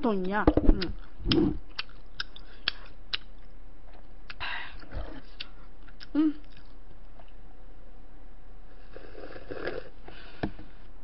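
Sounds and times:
person drinking from carton: 0:08.9 - 0:10.0.

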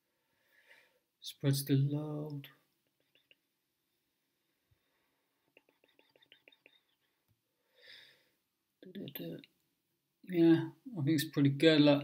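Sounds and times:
soft breathy sound: 0:00.0 - 0:01.2, 0:02.4 - 0:08.5.

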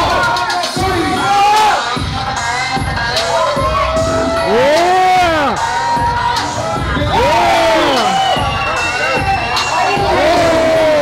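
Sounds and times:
background music: 0:00.0 - 0:11.0
crowd shouting and cheering: 0:00.0 - 0:11.0.

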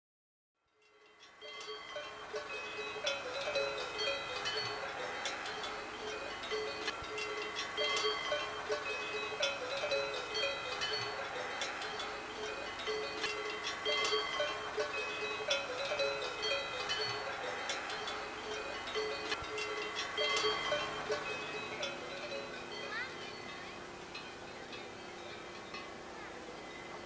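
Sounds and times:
cowbells clanking: 0:00.8 - 0:27.0.

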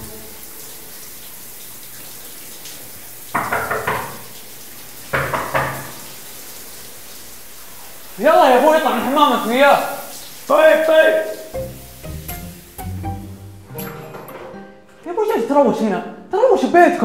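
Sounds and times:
running water hiss: 0:00.0 - 0:13.5
short louder sounds: 0:11.5 - 0:15.1.

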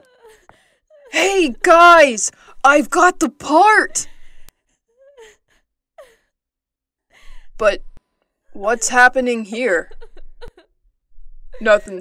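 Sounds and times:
person speaking: 0:01.1 - 0:04.1, 0:11.6 - 0:12.0.

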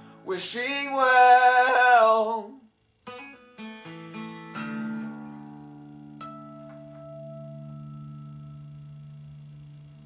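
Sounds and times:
acoustic guitar chord ringing: 0:00.0 - 0:10.0
high guitar note plucked: 0:03.1 - 0:10.0.

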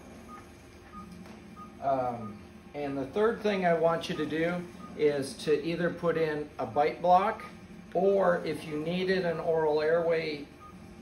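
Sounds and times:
faint equipment hum: 0:00.0 - 0:11.0
patient monitor high beeps: 0:00.2 - 0:02.5, 0:03.8 - 0:05.2, 0:10.6 - 0:10.9.

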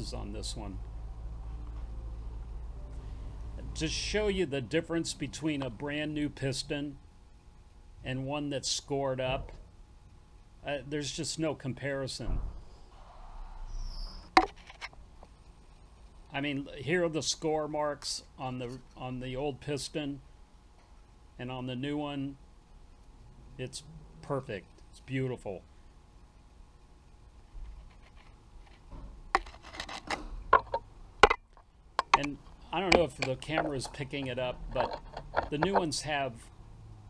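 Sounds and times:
handling clicks: 0:30.6 - 0:36.0.

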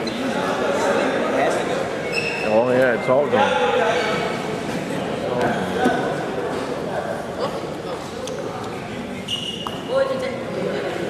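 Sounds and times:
indistinct echoing voices: 0:00.0 - 0:11.0.

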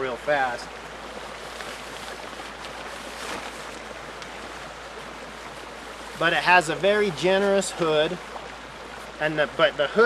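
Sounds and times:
rain poncho rustling: 0:00.5 - 0:09.2.

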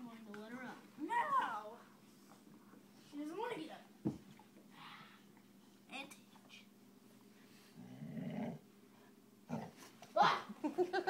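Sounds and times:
dog growling: 0:07.7 - 0:08.7, 0:09.5 - 0:09.8.

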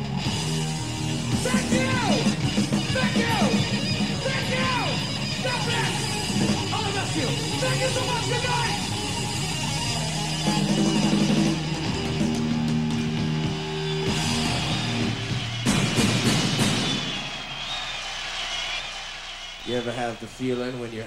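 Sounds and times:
rock band playing: 0:00.0 - 0:18.7
crash of drums and cymbals: 0:14.0 - 0:18.6.

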